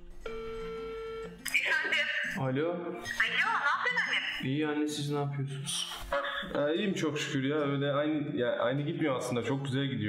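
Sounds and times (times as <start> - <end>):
phone ringback tone: 0.3 - 1.4.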